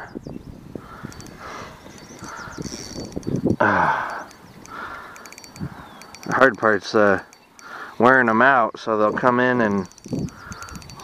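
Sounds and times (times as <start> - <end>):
faint clicks: 1.0 - 8.0, 9.7 - 11.0
person grunting: 3.6 - 4.2.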